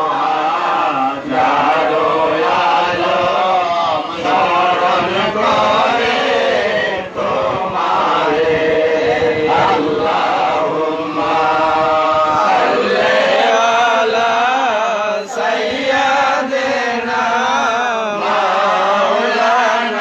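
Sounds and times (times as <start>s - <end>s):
men chanting together: 0.0s - 20.0s.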